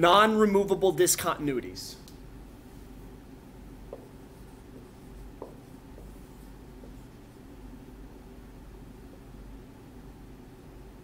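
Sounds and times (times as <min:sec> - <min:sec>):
marker writing on a whiteboard: 0:03.8 - 0:07.5.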